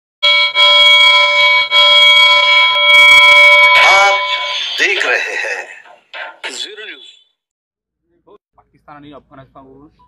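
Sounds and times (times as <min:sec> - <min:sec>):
electronic chord alarm-like: 0:00.2 - 0:06.4.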